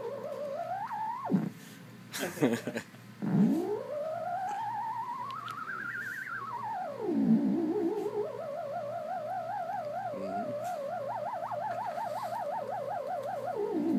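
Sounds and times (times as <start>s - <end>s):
theremin square-wave tone: 0.0s - 1.8s, 3.2s - 13.9s.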